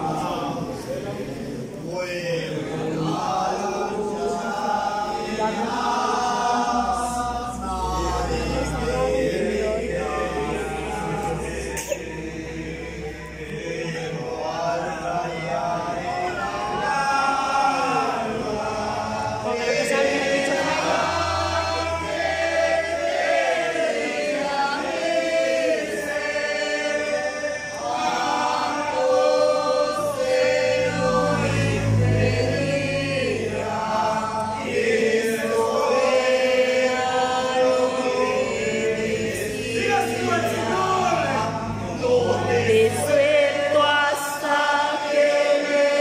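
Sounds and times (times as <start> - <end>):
congregation singing a hymn: 0.0 - 46.0.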